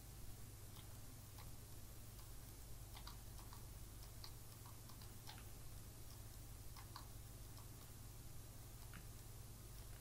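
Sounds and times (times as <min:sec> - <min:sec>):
low steady hum: 0:00.0 - 0:10.0
computer mouse clicking: 0:00.7 - 0:08.0, 0:08.7 - 0:10.0.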